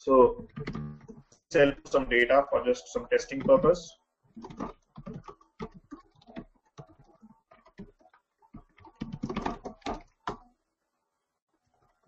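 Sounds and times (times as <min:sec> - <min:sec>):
computer keyboard typing: 0:03.2 - 0:10.5.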